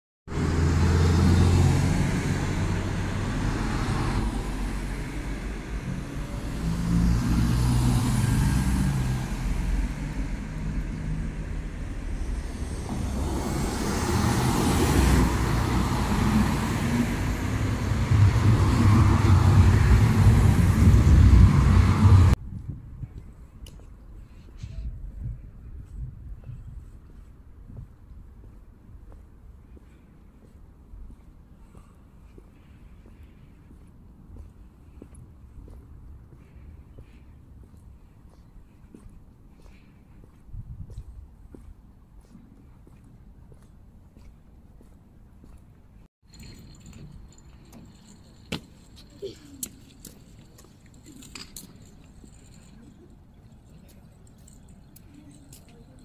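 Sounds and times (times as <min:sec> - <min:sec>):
cars passing close by: 0:00.3 - 0:22.4.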